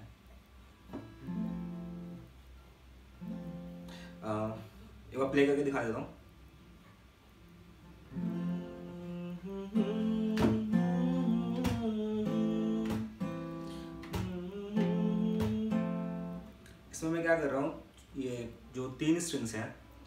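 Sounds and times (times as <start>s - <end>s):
fingerstyle acoustic guitar: 0.8s - 4.6s, 7.8s - 17.0s.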